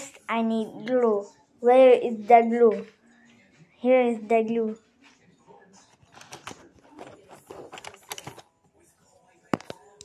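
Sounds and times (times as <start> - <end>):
plastic pens clicking and rattling: 6.0 - 8.4.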